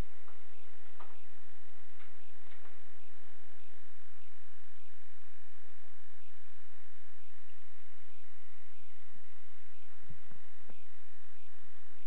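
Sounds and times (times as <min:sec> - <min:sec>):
faint room sounds: 0:00.0 - 0:12.0
low electrical hum: 0:00.0 - 0:12.0.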